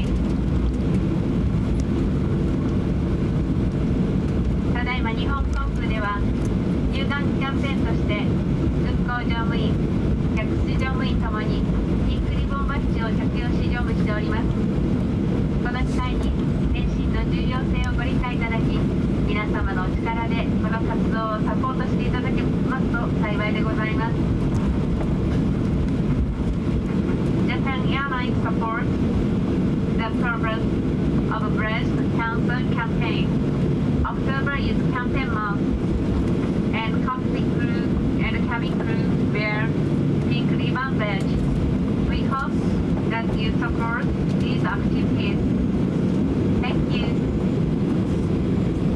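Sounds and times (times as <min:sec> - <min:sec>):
aircraft cabin engine drone: 0:00.0 - 0:48.9.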